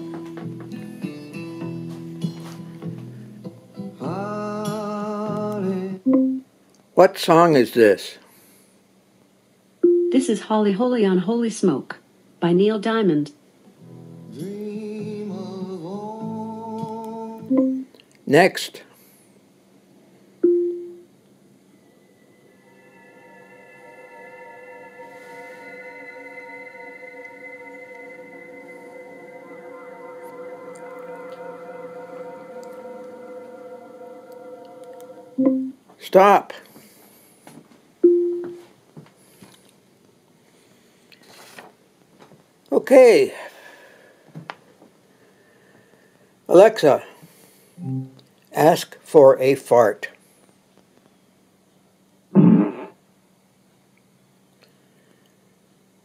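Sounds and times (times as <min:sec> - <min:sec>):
music with long held chords: 0:00.0 - 0:06.0, 0:13.8 - 0:17.7, 0:21.9 - 0:35.8, 0:47.8 - 0:48.3
fart sound effect from speaker: 0:52.4 - 0:53.0.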